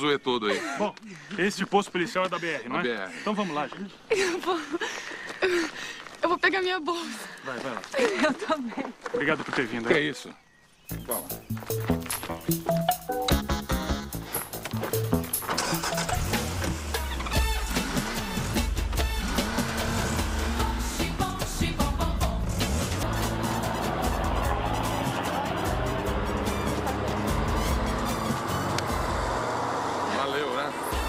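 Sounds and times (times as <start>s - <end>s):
background music: 10.9s - 30.0s, 30.7s - 31.0s
vehicle engines rumbling: 10.9s - 31.0s.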